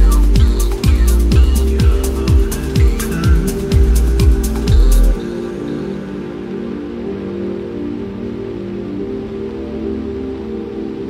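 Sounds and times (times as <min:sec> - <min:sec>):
ambient synth pad chords: 0:00.0 - 0:11.0.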